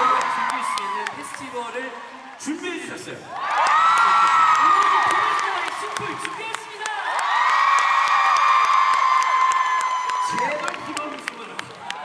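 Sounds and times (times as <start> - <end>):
crowd cheering and screaming: 0.0 - 2.4, 3.3 - 12.0.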